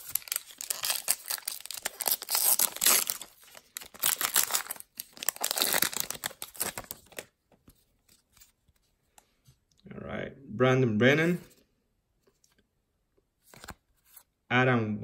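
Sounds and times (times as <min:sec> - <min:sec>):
wrapper tearing and crinkling: 0:00.0 - 0:07.3.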